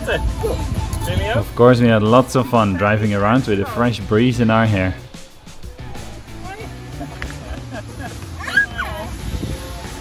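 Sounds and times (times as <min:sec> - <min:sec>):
background music: 0:00.0 - 0:10.0
child squealing with laughter: 0:08.4 - 0:09.1.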